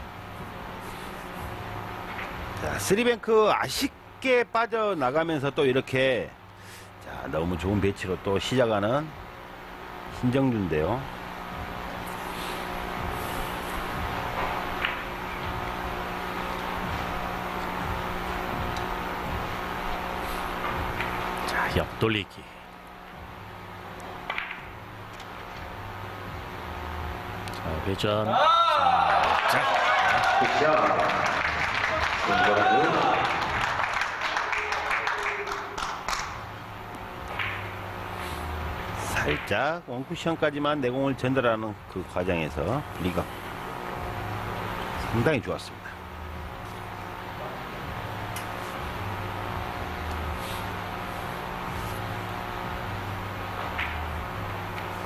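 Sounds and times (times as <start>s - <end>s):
low steady hum: 0.0s - 55.0s
billiard balls clicking: 24.2s - 25.5s, 37.2s - 37.8s.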